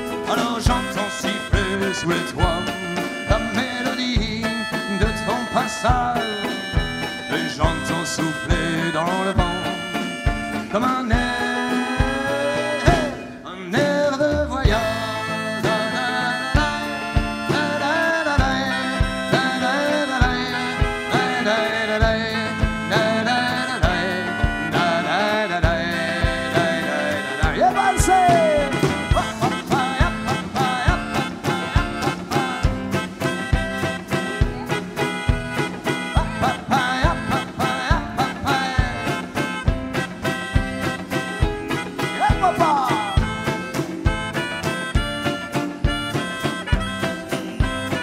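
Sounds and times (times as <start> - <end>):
drum kit beat: 0.0 - 48.0
live band instrumental: 0.0 - 48.0
gliding melodic lead line: 14.2 - 48.0.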